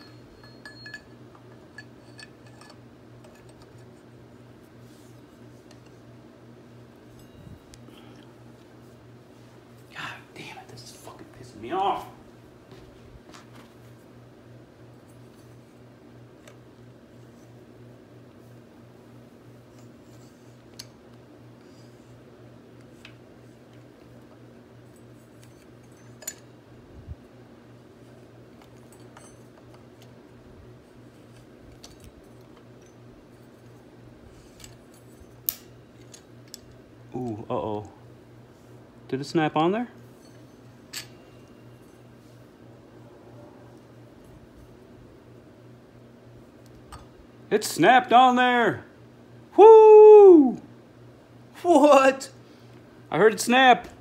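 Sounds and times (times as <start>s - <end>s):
metal tools clicking: 0.0s - 3.9s, 25.4s - 26.5s
steady low hum: 0.0s - 54.0s.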